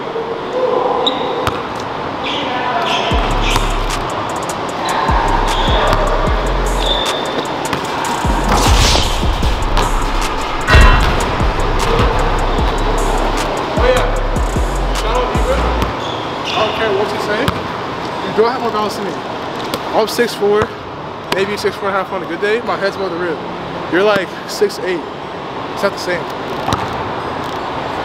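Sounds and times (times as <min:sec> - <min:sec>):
music with deep bass: 0:03.1 - 0:07.0, 0:08.0 - 0:15.9.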